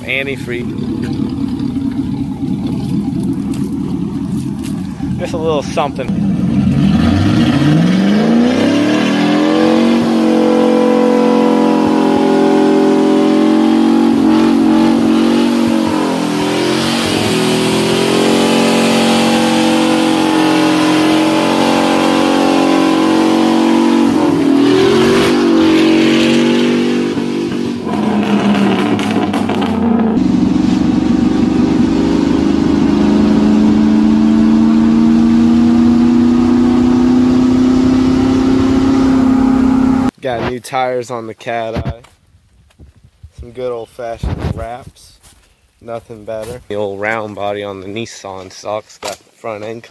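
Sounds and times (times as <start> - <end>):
pickup engine revving hard: 5.1 - 40.1.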